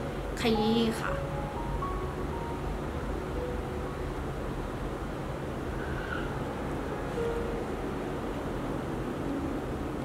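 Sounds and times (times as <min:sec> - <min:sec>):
faint soft music notes: 0:00.0 - 0:10.0
low rumbling background noise: 0:00.0 - 0:10.0.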